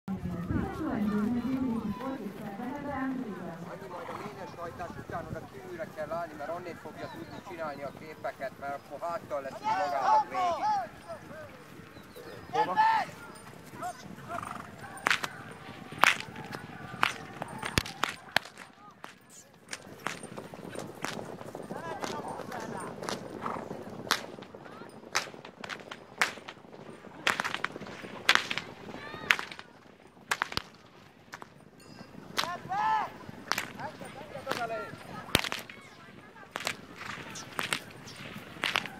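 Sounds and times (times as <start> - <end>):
voices: 0.1 - 38.9
whips cracking: 15.0 - 15.4, 16.0 - 20.2, 25.1 - 26.6, 27.3 - 28.7, 29.3 - 29.6, 30.3 - 31.5, 33.5 - 33.8, 35.4 - 35.8, 36.6 - 38.9.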